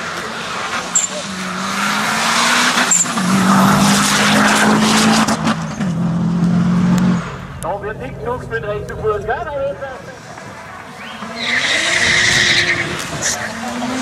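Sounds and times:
rally car engine at high revs: 0:00.0 - 0:07.6, 0:10.2 - 0:14.0
tyre and road noise: 0:00.0 - 0:14.0.

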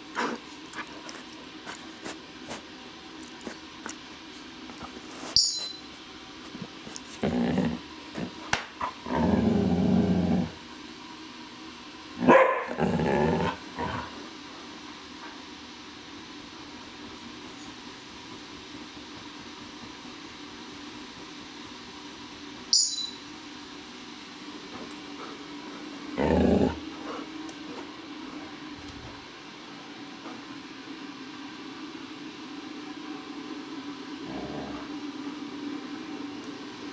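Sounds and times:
puppy barking: 0:12.2 - 0:12.8
puppy barking and growling: 0:12.2 - 0:14.1.

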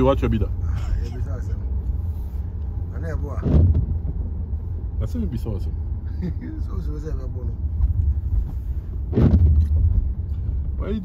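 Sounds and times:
car driving rumble from inside: 0:00.0 - 0:11.0.

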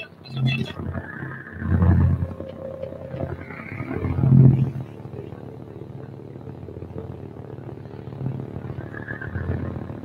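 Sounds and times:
rising and falling high tone: 0:00.0 - 0:05.6
thin high electronic tone: 0:00.0 - 0:05.6
deep swelling electronic sounds: 0:00.0 - 0:10.0.

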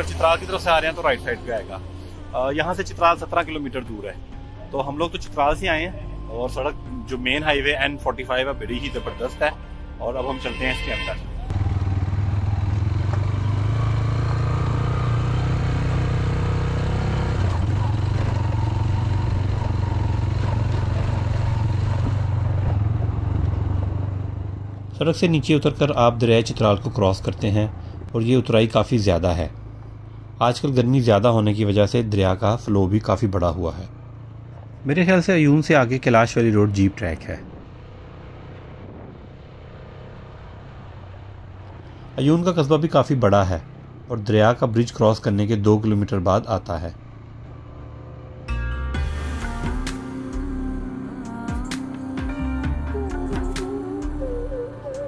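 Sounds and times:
vehicle engine and road noise: 0:00.0 - 0:55.0
motorcycle engine running: 0:11.5 - 0:24.9.

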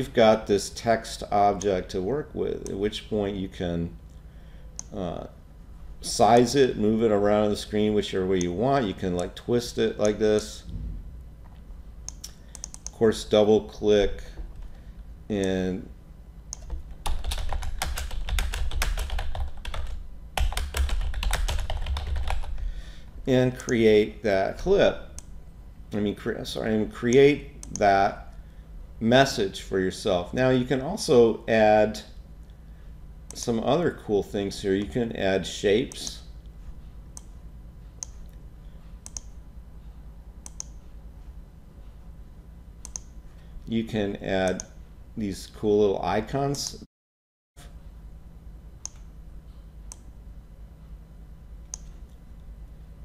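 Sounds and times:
low steady hum: 0:00.0 - 0:46.9, 0:47.6 - 0:53.0
computer mouse clicking: 0:12.1 - 0:13.0, 0:39.0 - 0:39.4, 0:40.4 - 0:40.8, 0:42.8 - 0:43.2, 0:49.9 - 0:50.1, 0:51.7 - 0:52.0
typing on computer keyboard: 0:16.6 - 0:22.6.

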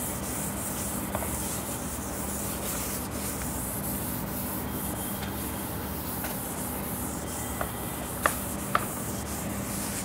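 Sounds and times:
eraser wiping whiteboard: 0:00.0 - 0:10.0.

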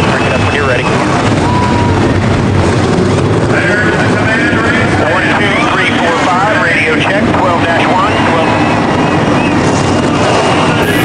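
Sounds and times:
race car engines running: 0:00.0 - 0:11.0
voices talking: 0:10.8 - 0:11.0.

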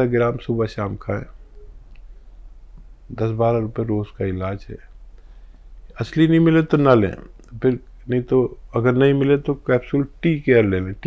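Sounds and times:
man speaking: 0:00.0 - 0:01.4, 0:03.1 - 0:04.9, 0:05.9 - 0:11.0
steady low hum: 0:00.0 - 0:11.0.

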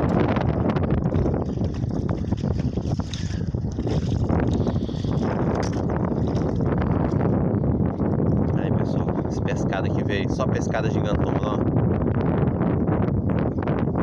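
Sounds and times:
wind buffeting microphone: 0:00.0 - 0:14.0.

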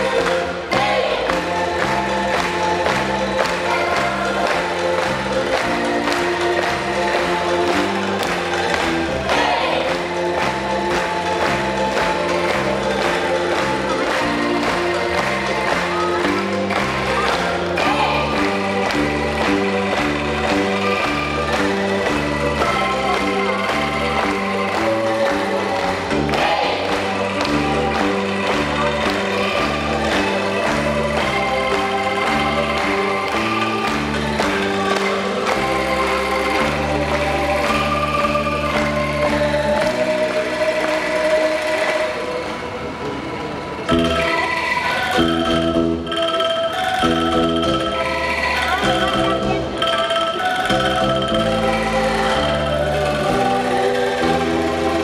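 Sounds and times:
bamboo angklung ensemble playing: 0:00.0 - 0:42.7, 0:43.8 - 0:55.0.

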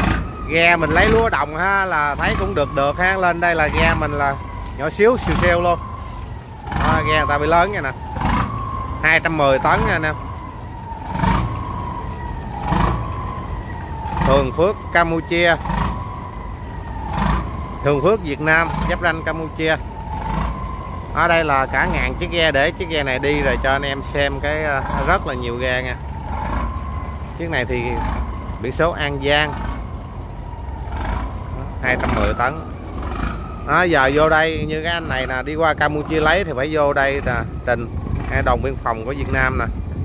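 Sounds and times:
boat engine rumble: 0:00.0 - 0:40.0.

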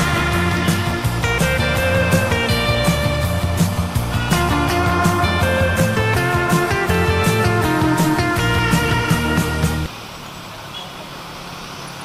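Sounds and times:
road noise hiss: 0:00.0 - 0:12.0.

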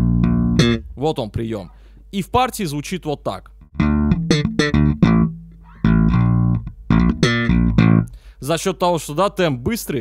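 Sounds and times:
slap bass guitar: 0:00.0 - 0:01.2, 0:03.6 - 0:08.3.

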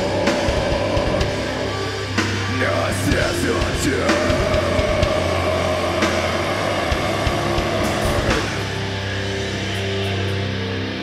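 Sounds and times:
metal band playing live: 0:00.0 - 0:11.0.

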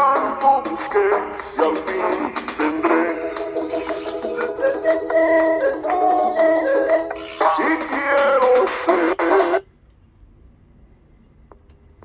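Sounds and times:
pop song from small speaker: 0:00.0 - 0:09.7.

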